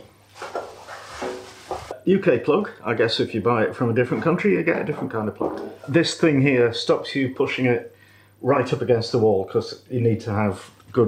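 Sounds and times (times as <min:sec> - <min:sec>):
plastic bag rustling: 0:00.2 - 0:01.9.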